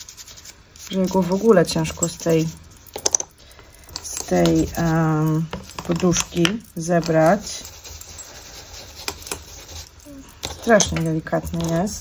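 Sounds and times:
sponge rubbing over paper: 0.0 - 2.6, 4.4 - 5.4, 7.3 - 10.0.

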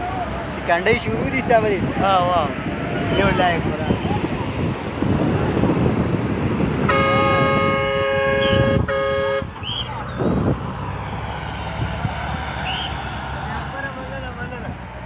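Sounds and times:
men's voices: 0.0 - 5.9, 11.9 - 15.0
wind on microphone: 0.0 - 13.2
vehicle horn blast: 6.8 - 9.5.

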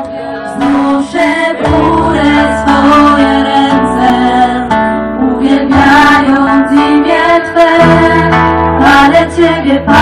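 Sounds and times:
acoustic guitar: 0.0 - 10.0
women singing together: 0.0 - 10.0.

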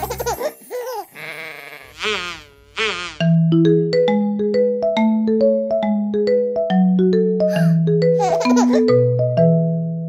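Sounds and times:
sheep bleating: 1.2 - 2.9
bright xylophone-like jingle: 3.2 - 9.6.

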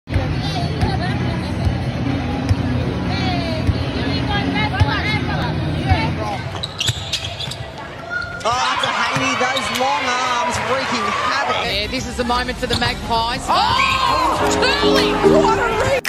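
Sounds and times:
voices and chatter: 0.1 - 16.0.

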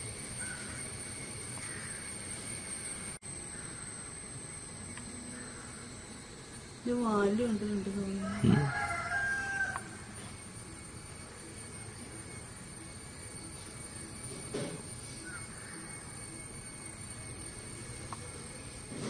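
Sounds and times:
fowl calling: 1.6 - 2.1, 5.2 - 6.0.

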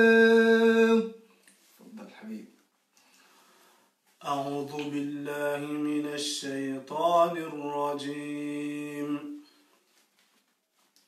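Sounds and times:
man reciting in melodic chant: 4.2 - 9.4.

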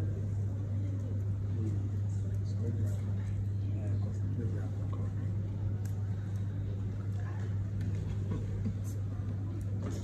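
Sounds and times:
faint background chatter: 0.0 - 10.0
low electrical hum: 0.0 - 10.0.

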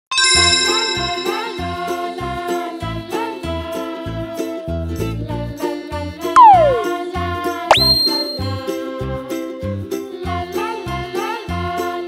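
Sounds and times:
jingly children's music: 0.1 - 2.4, 6.4 - 7.0, 7.7 - 8.8
downward gliding sound effect: 6.4 - 7.0
rising sweep sound effect: 6.4 - 7.0.

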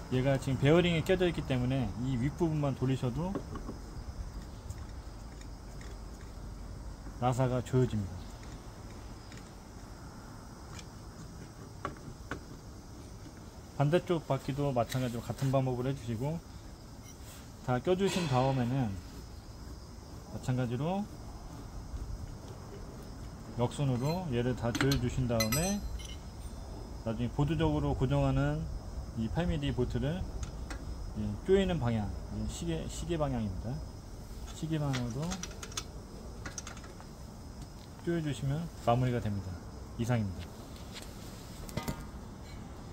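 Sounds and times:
spanner metallic clicks: 24.0 - 26.2, 34.4 - 37.0.

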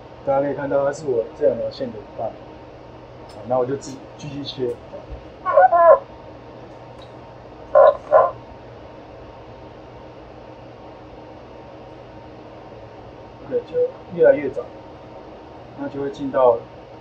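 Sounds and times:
cooling fans humming: 0.0 - 17.0.

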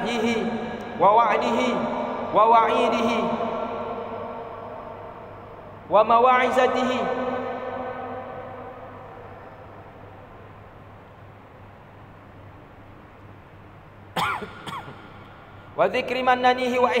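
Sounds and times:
man chanting: 0.0 - 3.6, 5.9 - 8.3
low steady hum: 0.0 - 17.0.

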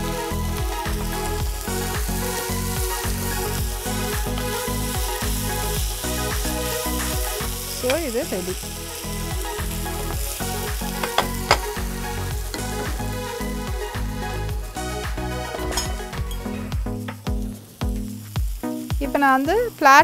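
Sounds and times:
vegetables sizzling in a pan: 0.0 - 20.0
spatula stirring: 10.9 - 11.8
spatula tapping pan: 11.0 - 11.8.

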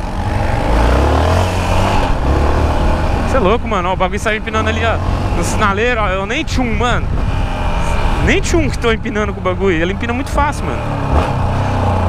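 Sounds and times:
motorcycle engine accelerating: 0.0 - 12.0
wind on microphone: 5.0 - 9.5.

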